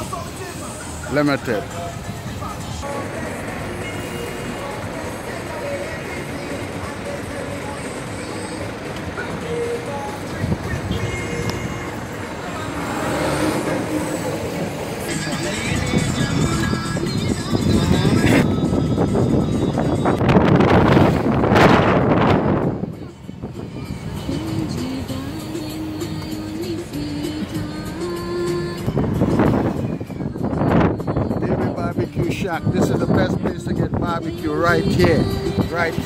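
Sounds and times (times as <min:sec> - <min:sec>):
car road noise from inside: 0:00.0 - 0:32.0
music playing: 0:00.0 - 0:36.0.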